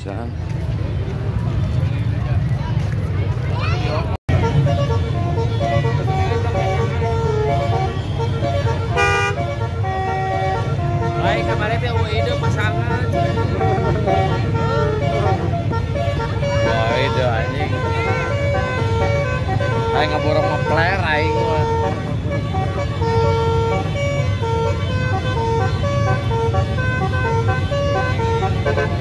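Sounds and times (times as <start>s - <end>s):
traffic and crowd rumble: 0.0s - 29.0s
car horns tooting: 4.3s - 29.0s.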